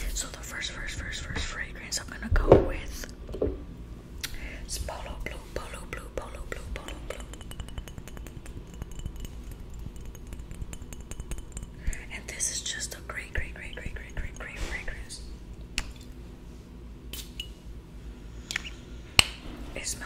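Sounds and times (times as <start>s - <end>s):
soft whispering: 0.0s - 3.0s, 4.6s - 7.3s, 12.0s - 15.3s, 19.8s - 20.0s
fingers tapping on glass bottle: 6.8s - 11.8s.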